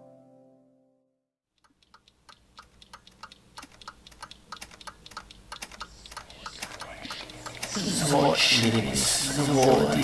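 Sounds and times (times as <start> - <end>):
keys typing: 1.6 - 10.0.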